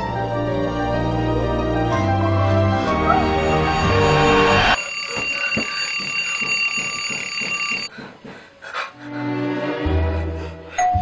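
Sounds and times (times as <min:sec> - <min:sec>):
background music: 0:00.0 - 0:04.8, 0:07.9 - 0:11.0
alarm clock ringing: 0:03.1 - 0:07.9.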